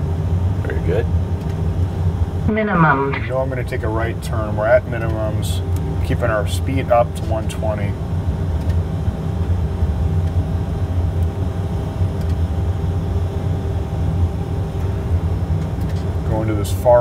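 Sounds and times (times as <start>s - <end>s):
turboprop cabin drone: 0.0s - 17.0s.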